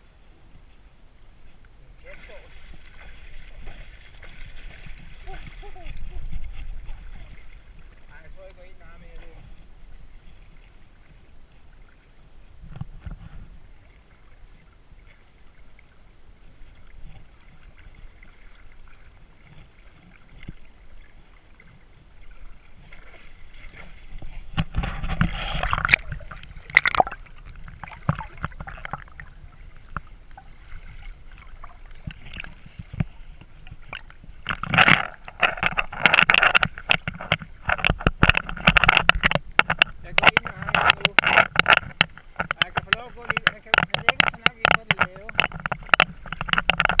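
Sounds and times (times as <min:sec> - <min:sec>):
water sloshing and splashing: 0:01.4 - 0:47.0.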